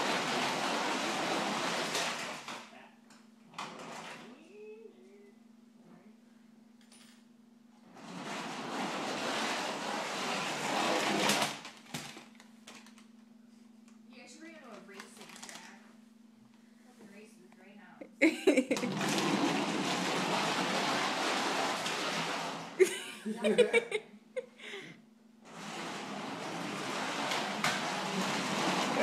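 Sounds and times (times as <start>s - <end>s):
wheels rolling on tiled floor: 0.0s - 2.7s, 3.5s - 4.4s, 7.8s - 13.0s, 18.6s - 22.9s, 25.4s - 29.0s.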